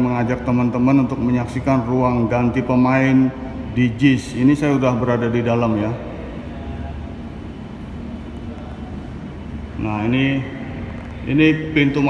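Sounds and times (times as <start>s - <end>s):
indoor room rumble: 0.0s - 12.0s
faint background voices: 5.7s - 11.4s.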